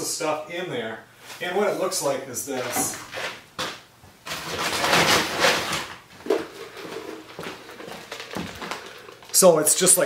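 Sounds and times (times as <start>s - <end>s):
handling noises: 2.5s - 9.6s
footsteps: 6.1s - 9.6s.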